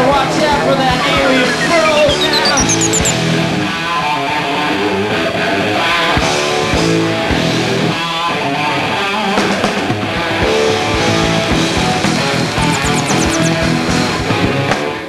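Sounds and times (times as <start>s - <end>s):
drums: 0.0s - 3.2s, 6.2s - 15.0s
distorted electric guitars: 10.4s - 13.9s.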